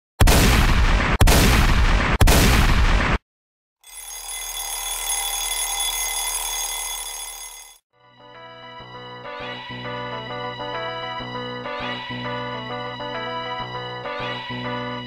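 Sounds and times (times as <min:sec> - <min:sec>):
ringing steady tones: 0:03.9 - 0:07.8.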